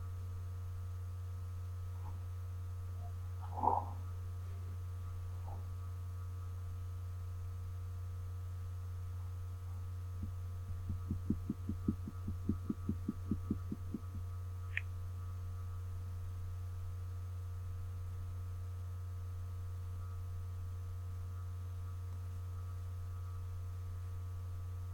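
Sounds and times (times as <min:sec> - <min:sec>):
low electrical hum: 0:00.0 - 0:24.9
soft low thumps: 0:10.1 - 0:14.8.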